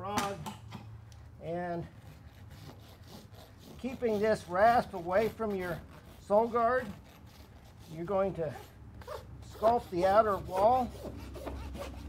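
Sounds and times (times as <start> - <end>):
rasp filing hoof: 1.9 - 12.0.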